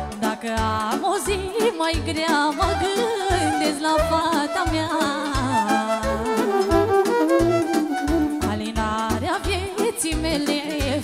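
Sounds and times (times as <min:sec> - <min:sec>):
woman singing into a microphone: 0:00.0 - 0:07.0, 0:07.8 - 0:11.0
band with steady bass beat: 0:05.4 - 0:09.0.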